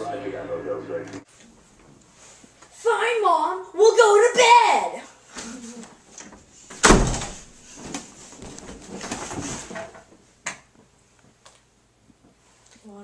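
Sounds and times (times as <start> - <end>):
door shutting with a thud: 6.8 - 7.5.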